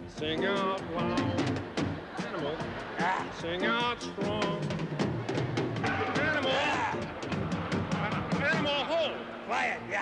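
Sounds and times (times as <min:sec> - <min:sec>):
fast drum solo: 0:04.1 - 0:08.8.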